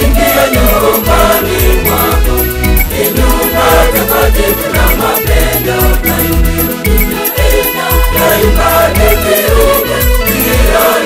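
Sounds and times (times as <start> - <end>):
bass: 0.0 - 11.0
choir singing: 0.0 - 11.0
steady drum beat: 0.0 - 11.0.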